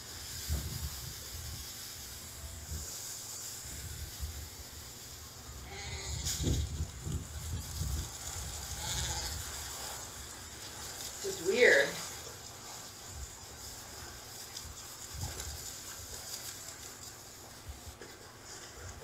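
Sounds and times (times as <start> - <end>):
wind rumble on microphone: 0.2 - 1.8, 5.6 - 10.4, 14.7 - 16.2.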